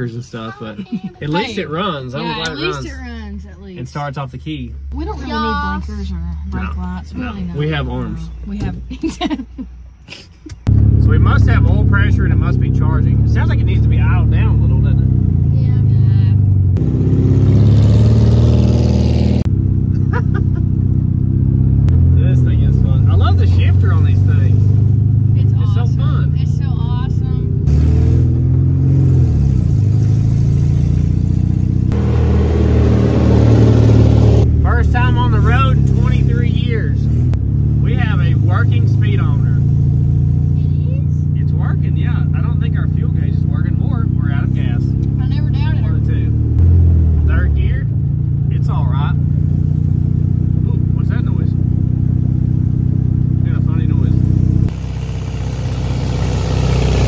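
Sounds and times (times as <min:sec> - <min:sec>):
car engine revving: 0:10.6 - 0:57.0.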